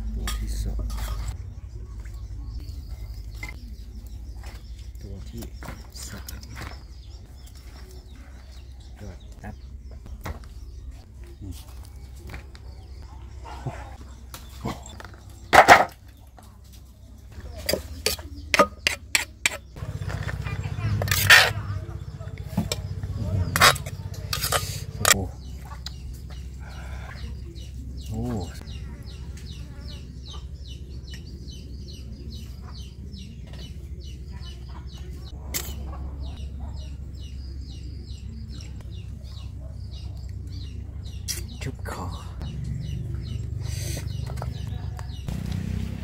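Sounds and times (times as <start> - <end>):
chickens clucking: 17.4 - 45.8.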